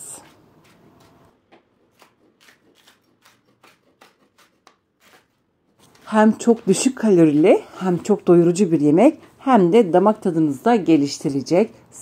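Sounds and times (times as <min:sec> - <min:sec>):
knife slicing on wooden board: 0:00.2 - 0:05.4.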